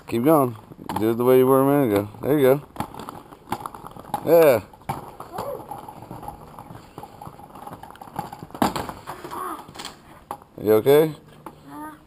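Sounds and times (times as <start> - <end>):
skate wheels rattling on paving: 0.0 - 11.2.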